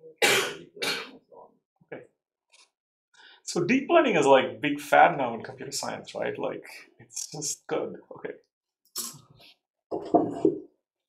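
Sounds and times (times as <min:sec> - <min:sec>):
person coughing: 0:00.2 - 0:01.2.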